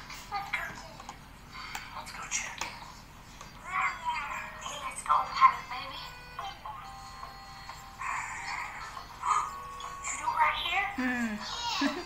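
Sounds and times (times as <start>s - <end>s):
held musical tones: 3.6s - 12.0s.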